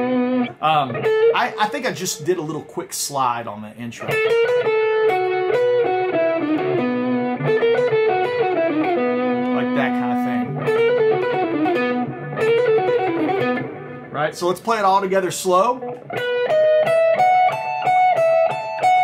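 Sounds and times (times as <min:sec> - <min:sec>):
electric guitar single-note melody: 0:00.0 - 0:02.6, 0:04.0 - 0:19.0.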